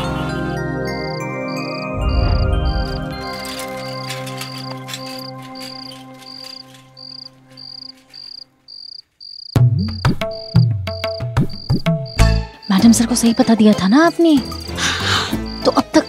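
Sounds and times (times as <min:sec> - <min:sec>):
background music: 0:00.0 - 0:08.7, 0:09.6 - 0:16.0
crickets chirping: 0:01.2 - 0:16.0.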